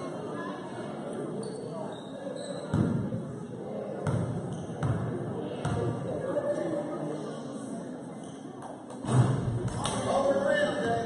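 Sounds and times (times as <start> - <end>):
murmur of spectators talking: 0.0 - 11.0
basketball bouncing on gym floor: 4.0 - 5.9.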